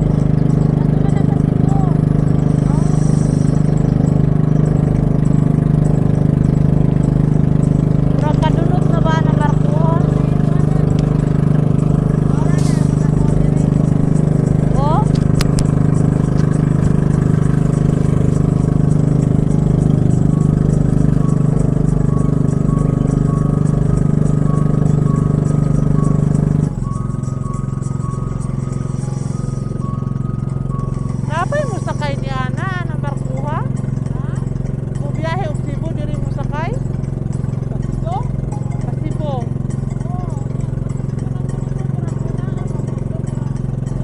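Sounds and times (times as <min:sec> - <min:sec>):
boat engine droning: 0:00.0 - 0:44.0.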